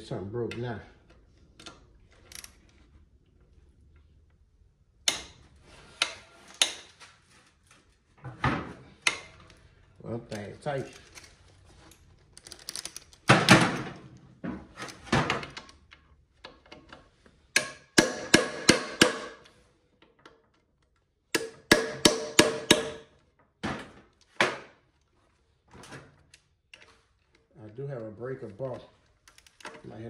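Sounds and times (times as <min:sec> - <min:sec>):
hammer striking steel tool: 0:17.6 - 0:19.4, 0:21.4 - 0:23.0.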